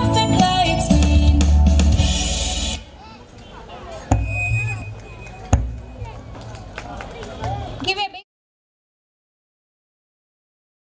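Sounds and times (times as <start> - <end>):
voices chattering: 2.8 - 8.2.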